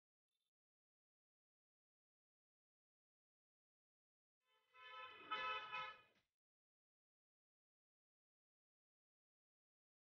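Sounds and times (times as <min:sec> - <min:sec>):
vehicle horn: 0:04.6 - 0:06.2.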